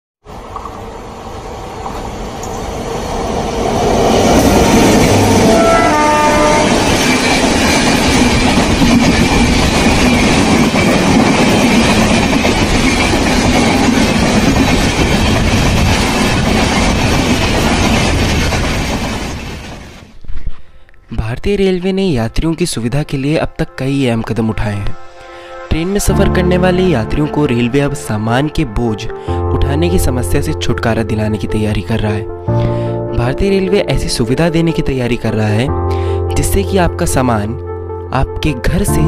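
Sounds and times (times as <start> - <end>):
train rumbling past: 0.2 - 20.2
train horn: 5.1 - 7.3.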